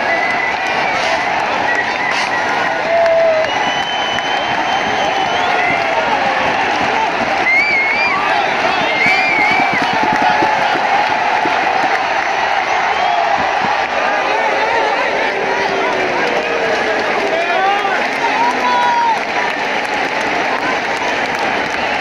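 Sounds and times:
stadium crowd cheering: 0:00.0 - 0:22.0.

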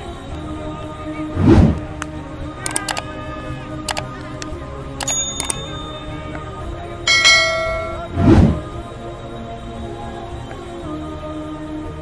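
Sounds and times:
background music: 0:00.0 - 0:12.0
sharp clicks: 0:02.0 - 0:03.1, 0:03.9 - 0:05.8
bell-like notification chime: 0:07.1 - 0:08.2.

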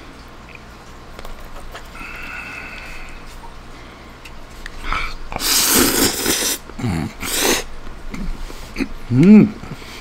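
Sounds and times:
person slurping noodles: 0:04.8 - 0:08.9
low grunt: 0:08.2 - 0:09.8.

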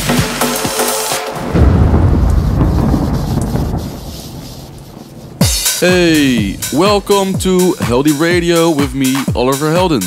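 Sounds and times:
deep rumbling boom: 0:01.4 - 0:07.6.

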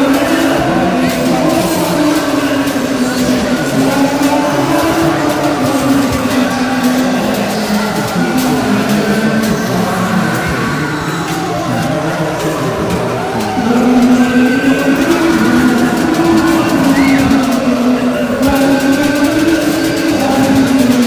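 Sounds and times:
drums: 0:00.0 - 0:21.0.

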